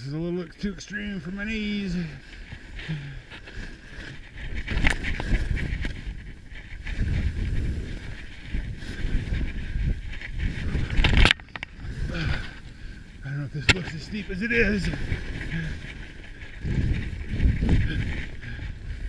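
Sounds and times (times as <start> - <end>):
skis scraping across snow: 0.4 - 19.0
wind on microphone: 0.9 - 19.0.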